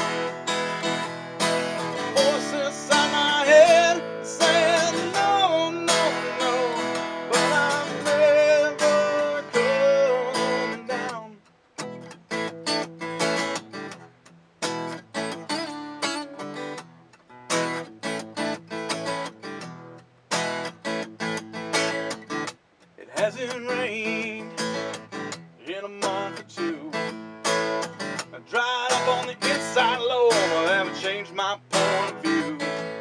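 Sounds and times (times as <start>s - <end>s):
acoustic guitar strumming: 0.0s - 33.0s
man singing: 1.8s - 11.4s, 23.0s - 25.0s, 25.6s - 27.2s, 28.2s - 33.0s.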